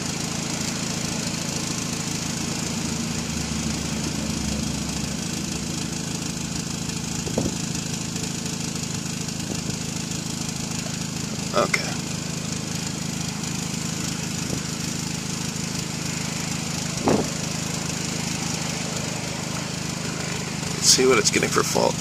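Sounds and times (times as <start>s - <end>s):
car engine idling: 0.0s - 22.0s.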